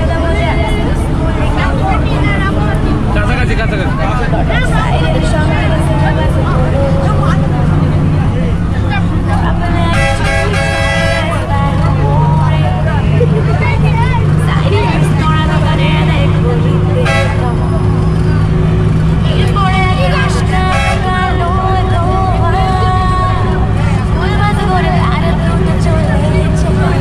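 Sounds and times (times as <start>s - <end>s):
bus engine droning: 0.0s - 27.0s
bus horn tones: 9.8s - 11.8s, 16.9s - 18.3s, 20.1s - 21.8s.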